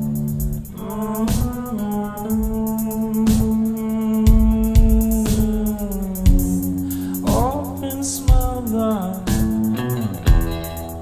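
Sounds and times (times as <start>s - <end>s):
fast high ticking: 0.0s - 11.0s
drum hit: 0.4s - 7.6s, 9.3s - 10.8s.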